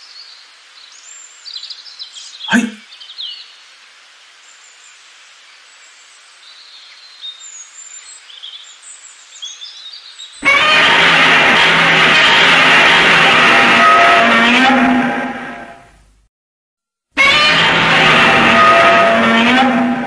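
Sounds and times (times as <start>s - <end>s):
birds chirping: 0.0s - 3.7s
loud dense sound: 2.5s - 2.8s, 10.4s - 15.7s.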